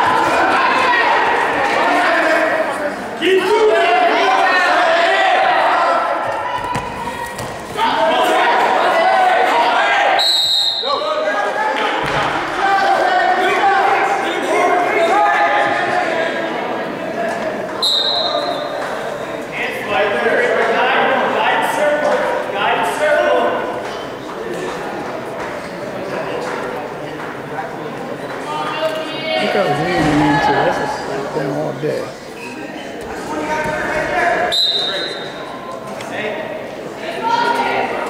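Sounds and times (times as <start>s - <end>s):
people shouting in a gym: 0.0s - 16.9s, 17.8s - 23.8s
onlookers calling out and talking: 0.0s - 38.0s.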